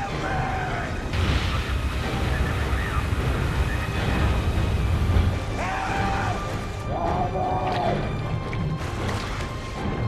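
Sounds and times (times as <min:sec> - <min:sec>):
churning river water rumble: 0:00.0 - 0:10.0.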